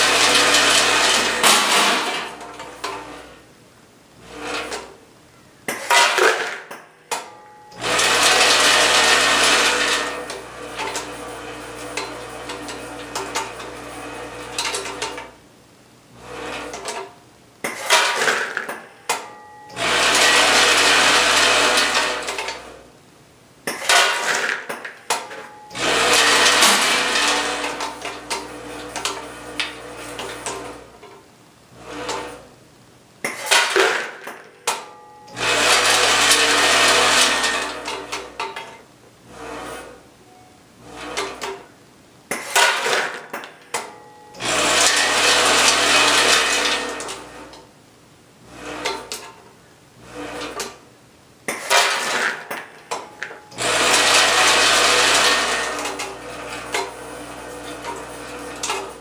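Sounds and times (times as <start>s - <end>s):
vibratory feed trays running: 0.0s - 3.5s, 4.2s - 5.0s, 7.2s - 15.4s, 16.1s - 22.9s, 23.7s - 32.6s, 33.2s - 38.6s, 39.2s - 41.7s, 42.4s - 47.7s, 48.4s - 50.9s, 51.5s - 59.0s.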